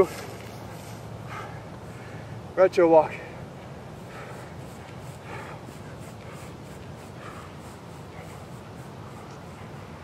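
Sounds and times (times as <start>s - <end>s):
steady low rumble: 0.0s - 10.0s
person breathing hard: 1.1s - 2.5s, 3.2s - 10.0s.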